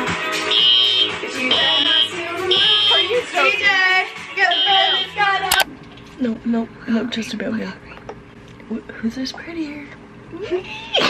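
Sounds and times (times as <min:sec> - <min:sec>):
music: 0:00.0 - 0:05.6
fire alarm beeping: 0:00.5 - 0:03.2, 0:04.5 - 0:05.2.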